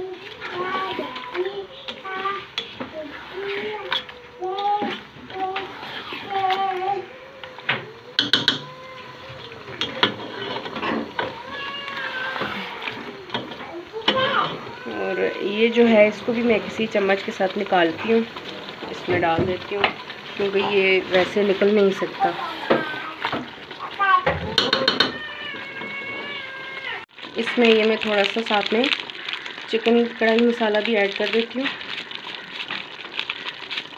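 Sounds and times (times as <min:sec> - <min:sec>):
spoon tapping a pot: 0:08.2 - 0:08.7
spatula knocking and scraping pot: 0:24.3 - 0:25.2.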